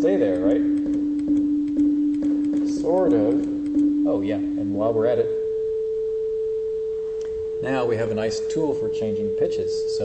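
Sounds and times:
person speaking: 0.0 - 1.1, 2.2 - 5.4, 7.2 - 10.0
synthesized sine tone: 0.0 - 10.0
faint delay clicks: 0.2 - 3.9.

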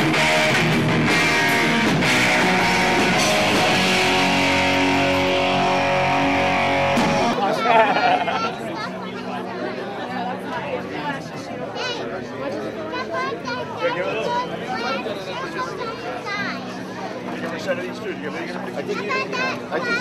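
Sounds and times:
rock band with electric guitars: 0.0 - 8.7
crowd voices chattering: 0.0 - 20.0.

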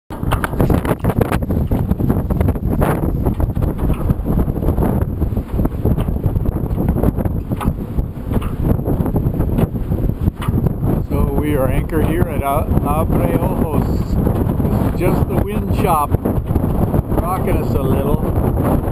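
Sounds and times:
strong wind buffeting microphone: 0.1 - 18.9.

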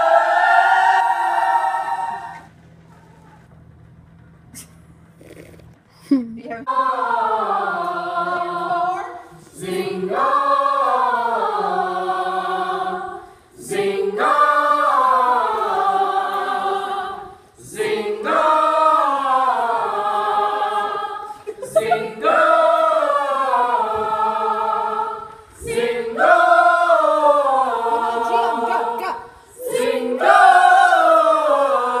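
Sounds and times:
group singing vocal warm-up: 0.0 - 2.5, 6.6 - 32.0.

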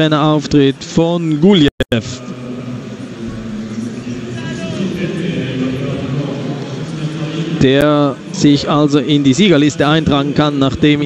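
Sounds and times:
crowd hubbub: 0.0 - 11.0
distant voices: 0.0 - 11.0.

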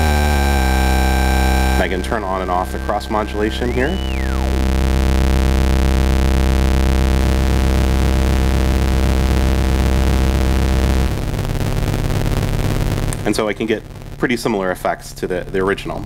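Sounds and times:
buzzy synth drone: 0.0 - 15.6.

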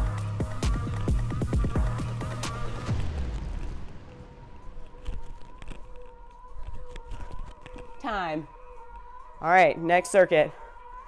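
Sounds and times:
electronic dance music: 0.0 - 4.8.

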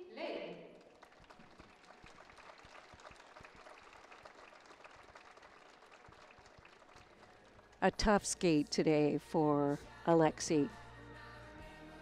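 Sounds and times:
crowd applauding: 0.7 - 8.1.

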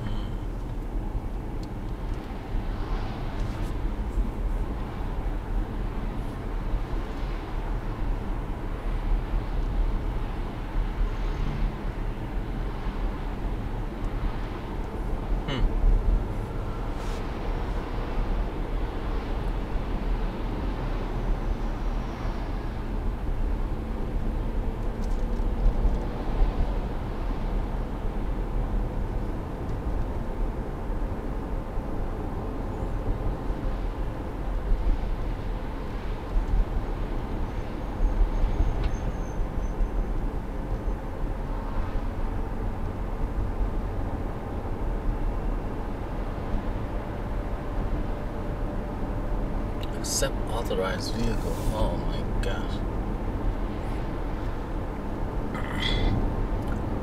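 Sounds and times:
car cabin road and engine rumble: 0.0 - 57.0.

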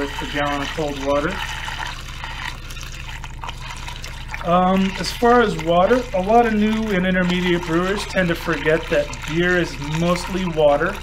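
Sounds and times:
liquid pouring and splashing: 0.0 - 11.0
water gurgling: 0.0 - 11.0.

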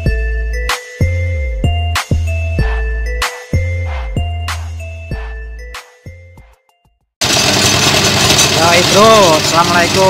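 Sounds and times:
musical jingle chimes: 0.0 - 7.0
stationary engine running: 7.2 - 10.0.

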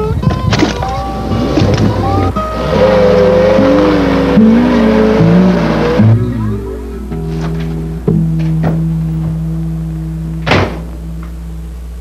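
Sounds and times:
background music: 0.0 - 12.0
car engine revving: 0.7 - 12.0.

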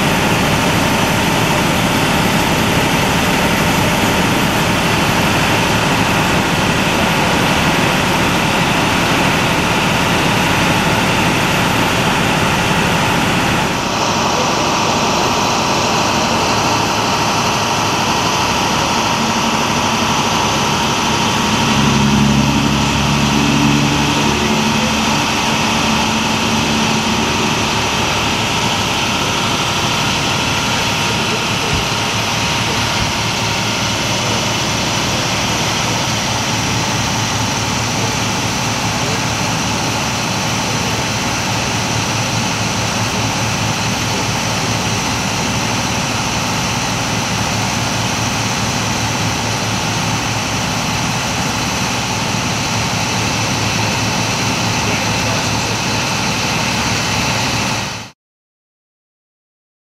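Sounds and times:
low hum: 0.0 - 39.2
idling vehicle engine drone: 0.0 - 58.2.

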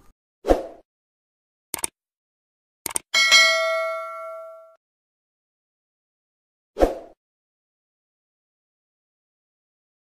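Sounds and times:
click: 1.7 - 1.9, 2.8 - 3.1
bell ding: 3.2 - 4.8.

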